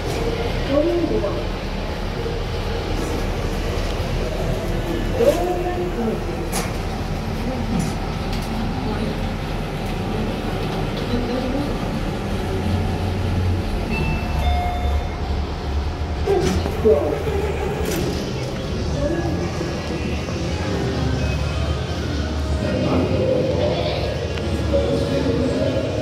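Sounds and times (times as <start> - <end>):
lift low rumble: 0.0 - 26.0.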